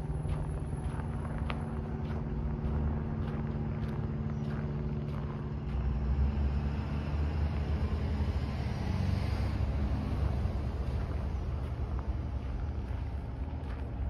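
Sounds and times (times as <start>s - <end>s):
footsteps crunching on snow: 0.0s - 7.0s, 10.0s - 14.0s
low rumble: 0.0s - 8.0s
vehicle motor hum: 0.0s - 14.0s.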